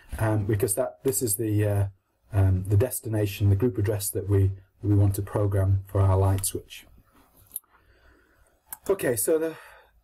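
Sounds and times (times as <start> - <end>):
man talking: 0.0 - 7.0, 8.7 - 9.7.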